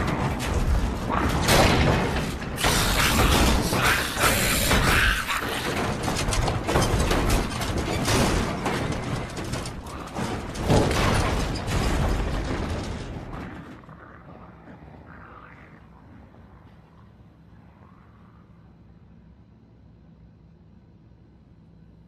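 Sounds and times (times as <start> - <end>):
mechanical clattering and knocking: 0.0 - 15.2.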